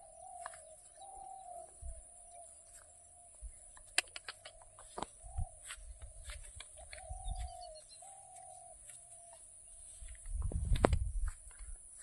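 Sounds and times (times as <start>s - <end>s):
dove cooing: 0.0s - 9.4s.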